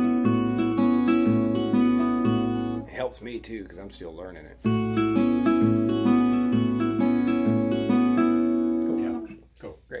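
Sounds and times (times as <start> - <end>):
acoustic guitar fingerpicked: 0.0 - 9.8.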